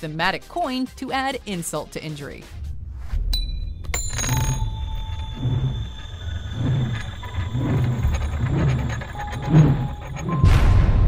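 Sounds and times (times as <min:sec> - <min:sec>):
metal coin pinging and ringing: 0:03.4 - 0:10.5.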